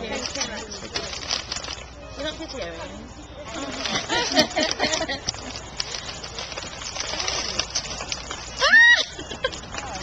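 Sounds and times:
foil wrapping crinkling and tearing: 0.0s - 2.7s, 3.5s - 10.0s.

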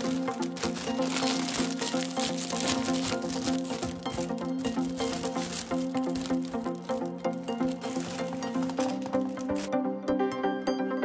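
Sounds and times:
foil bag crinkling: 0.0s - 9.8s
light background music: 0.0s - 11.0s.

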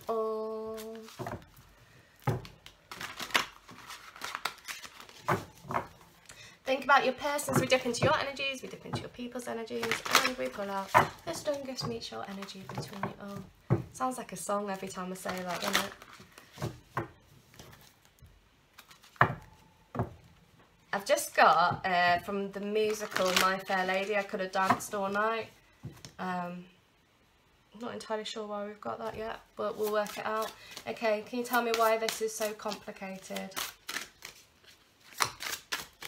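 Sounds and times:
cards being shuffled: 9.8s - 13.4s, 15.2s - 16.8s, 18.7s - 19.2s, 22.8s - 25.2s, 29.7s - 36.0s.

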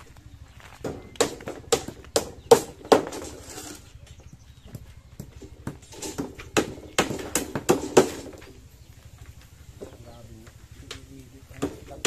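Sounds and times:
hard knocks on wood: 0.8s - 3.3s, 4.6s - 8.5s, 11.5s - 12.0s.

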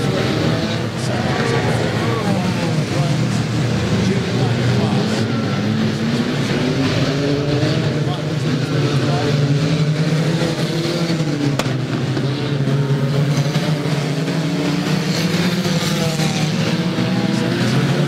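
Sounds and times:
general track noise: 0.0s - 18.0s
racing car engines revving: 0.0s - 18.0s.

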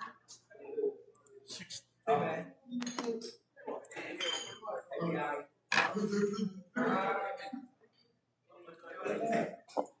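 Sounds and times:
voices: 0.0s - 7.6s, 8.6s - 9.9s.

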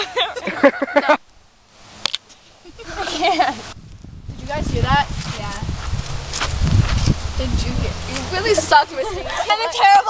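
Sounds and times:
low thuds and rumble on microphone: 3.8s - 8.4s
footsteps scuffing on sandy dirt: 5.1s - 7.2s.

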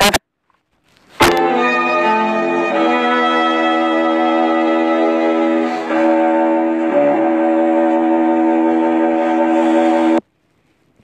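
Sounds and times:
classical music sustained chord: 1.3s - 10.2s.

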